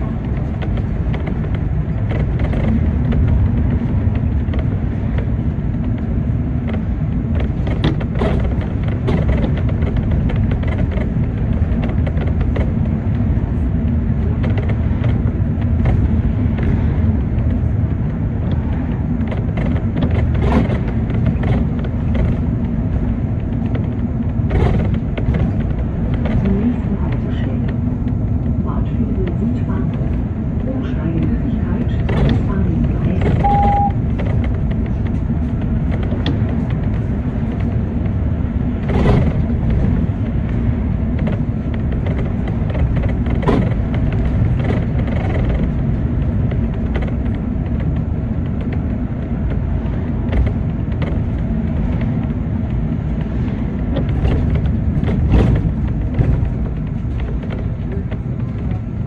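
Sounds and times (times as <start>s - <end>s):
bus engine drone: 0.0s - 59.0s
rattles and knocks: 0.0s - 59.0s
road rumble: 0.0s - 59.0s
short high beep: 33.4s - 34.0s.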